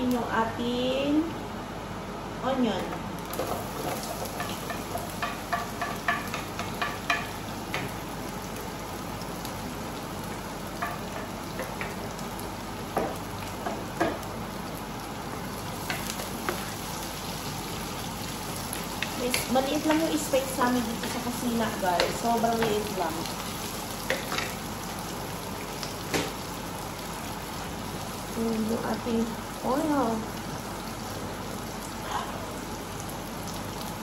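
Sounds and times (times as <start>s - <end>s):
onion sizzling in oil: 1.6s - 34.0s.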